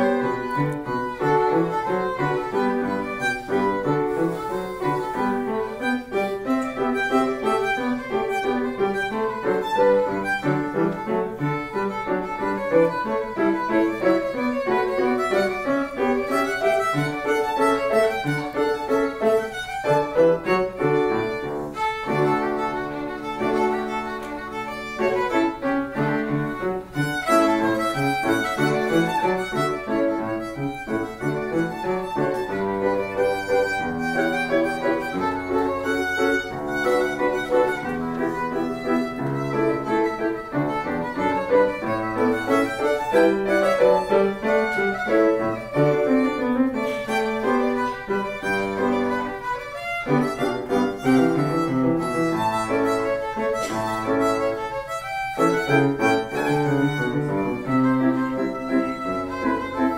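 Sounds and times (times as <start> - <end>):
piano accompaniment: 0.0 - 59.9
violin solo: 0.0 - 59.9.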